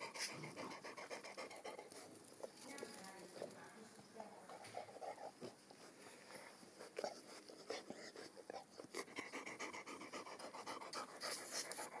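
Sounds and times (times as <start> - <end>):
dog panting: 0.0 - 3.0, 4.4 - 12.0.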